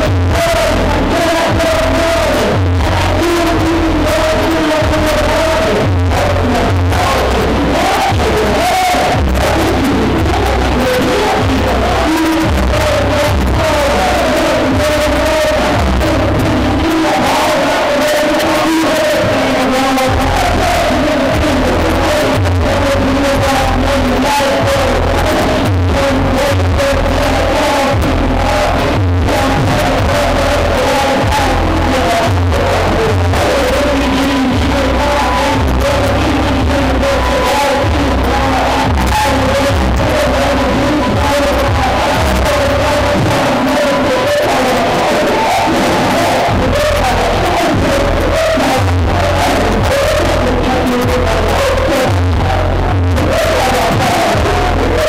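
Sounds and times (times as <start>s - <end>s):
heavy bass: 0.0s - 55.0s
hip-hop music over sound system: 0.0s - 55.0s
vocals: 0.0s - 55.0s.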